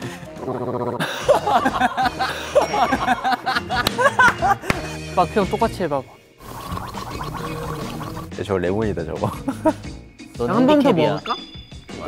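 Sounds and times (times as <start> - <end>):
person gargling: 0.4 - 1.1.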